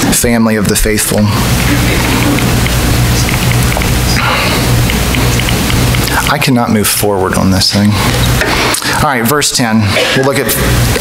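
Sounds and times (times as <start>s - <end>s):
low electrical hum: 0.0s - 11.0s
steady hiss: 0.8s - 9.8s.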